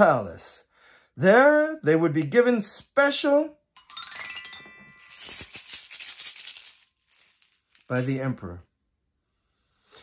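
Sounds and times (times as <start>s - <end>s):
hand shakers rattling: 4.9s - 8.4s.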